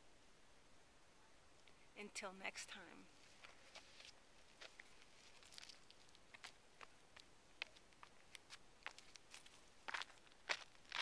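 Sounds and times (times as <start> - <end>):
footsteps scuffing on rock: 3.4 - 11.0.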